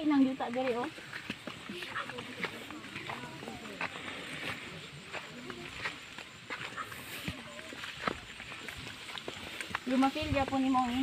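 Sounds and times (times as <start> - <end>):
faint voices talking: 0.0 - 11.0
footsteps on dirt trail: 0.0 - 11.0.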